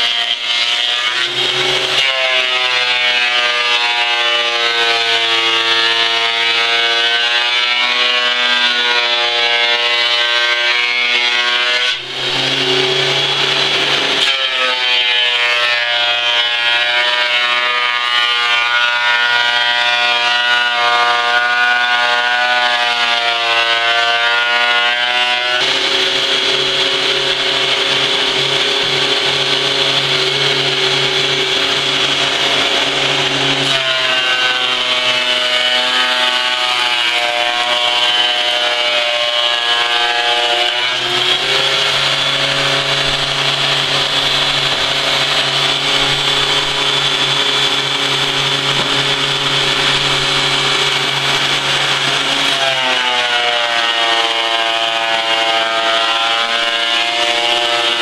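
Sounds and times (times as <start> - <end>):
planer cutting wood: 0.0 - 58.0
thickness planer motor whine: 0.0 - 58.0.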